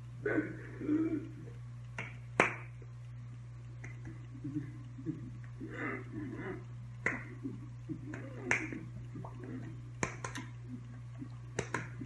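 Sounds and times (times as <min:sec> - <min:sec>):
steady low hum: 0:00.0 - 0:12.0
hands smacking and tapping: 0:02.0 - 0:02.7, 0:07.0 - 0:07.4, 0:08.1 - 0:09.3, 0:10.0 - 0:10.5, 0:11.5 - 0:12.0.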